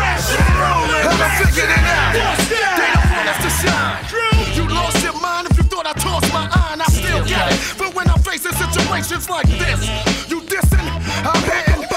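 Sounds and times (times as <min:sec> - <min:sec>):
hip hop beat with deep bass: 0:00.0 - 0:11.9
person rapping: 0:00.0 - 0:11.9.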